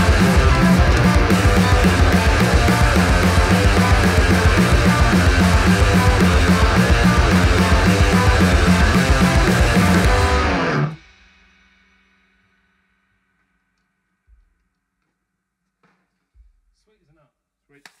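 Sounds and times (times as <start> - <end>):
guitar notes ringing: 0.0 - 11.0
rock band playing loud: 0.0 - 11.0.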